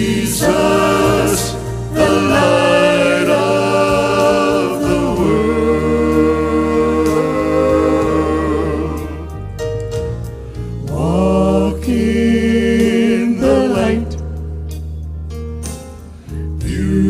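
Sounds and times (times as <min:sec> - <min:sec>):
gospel group singing in harmony: 0:00.0 - 0:14.7, 0:16.5 - 0:17.0
low steady accompaniment: 0:00.0 - 0:17.0.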